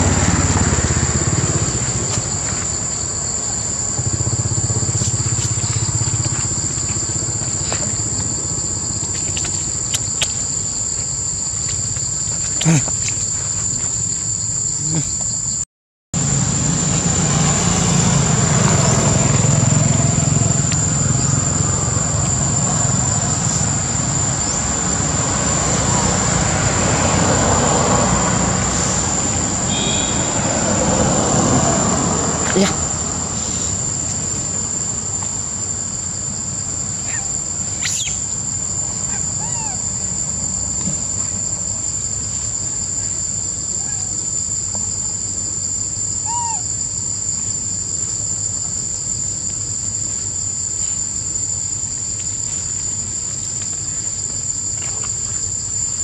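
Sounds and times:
high-pitched insect drone: 0.0s - 15.6s, 16.2s - 56.0s.

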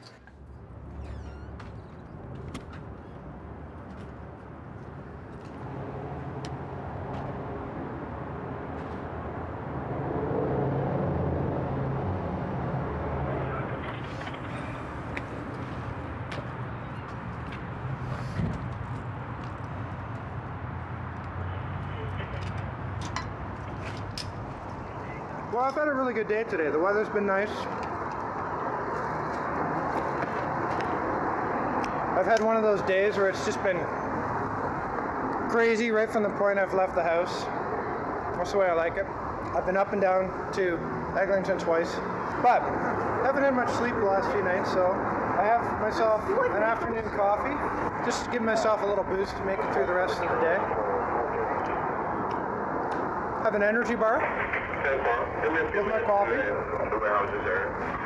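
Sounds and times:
city street traffic: 0.0s - 58.0s
motor vehicles passing: 0.2s - 58.0s.

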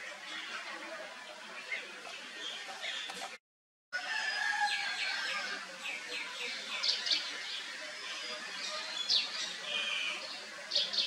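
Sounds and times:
birds chirping: 1.6s - 3.4s, 4.7s - 11.0s.

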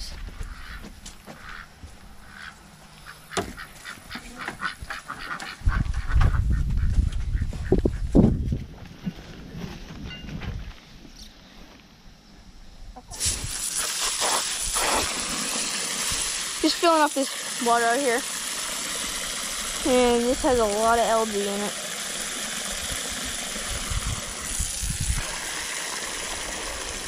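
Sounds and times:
ducks quacking: 0.4s - 8.0s
water gushing from garden hose: 13.1s - 27.0s.

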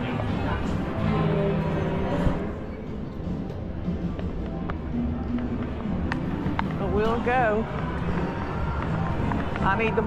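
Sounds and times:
din of machines and people: 0.0s - 10.0s.

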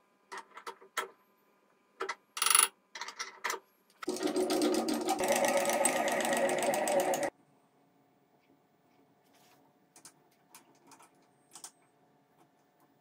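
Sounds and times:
rapid mechanical rattle: 4.0s - 7.3s.

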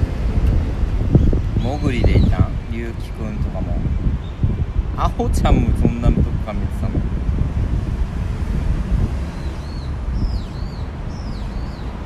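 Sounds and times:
wind buffeting microphone: 0.0s - 12.0s
songbird chirping: 9.3s - 12.0s.

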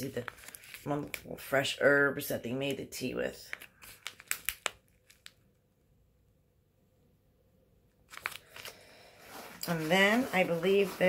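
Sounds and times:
packaging crinkling: 0.1s - 1.3s, 3.5s - 5.5s, 8.1s - 11.0s.

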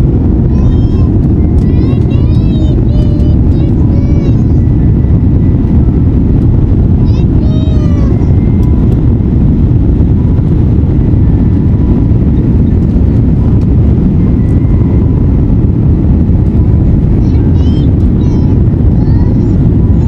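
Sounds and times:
airplane engines rumbling in cabin: 0.0s - 20.0s.

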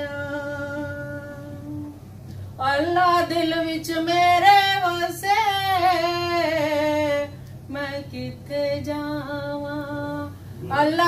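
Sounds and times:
woman singing unaccompanied: 0.0s - 2.0s, 2.6s - 11.0s.

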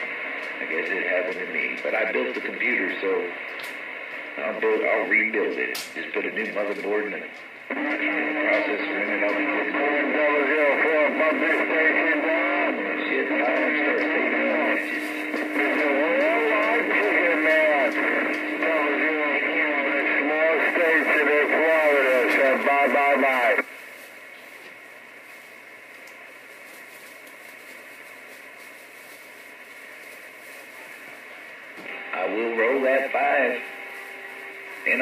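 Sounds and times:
voice over radio speaker: 0.0s - 23.7s, 30.9s - 35.0s
radio static hiss: 0.0s - 35.0s.

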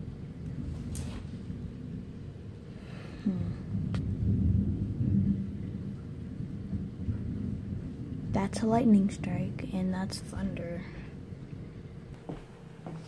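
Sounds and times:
thunder rolling: 0.0s - 12.3s.

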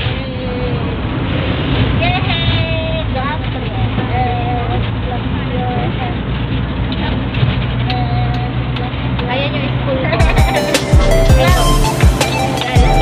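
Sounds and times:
people talking: 0.0s - 0.9s, 2.0s - 6.2s, 7.9s - 13.0s
road noise: 0.0s - 13.0s
vehicle engine drone: 0.0s - 13.0s.

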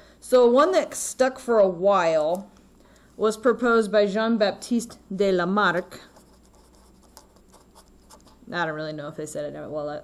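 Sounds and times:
pen scratching on paper: 6.0s - 8.4s.

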